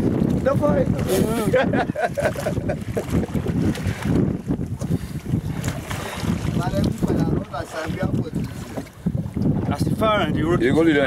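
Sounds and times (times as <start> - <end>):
water moving around boat: 0.0 - 11.0
wind buffeting microphone: 0.0 - 11.0.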